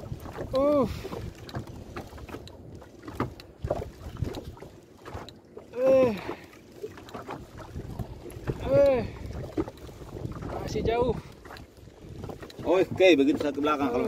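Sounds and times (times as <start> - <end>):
boat noise: 0.0 - 14.0
wind: 0.0 - 14.0
man grunting with effort: 5.8 - 6.3.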